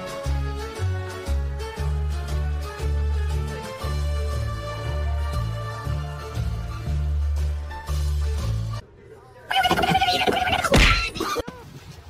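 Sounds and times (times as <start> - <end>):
warbling vocal call: 9.5 - 11.2.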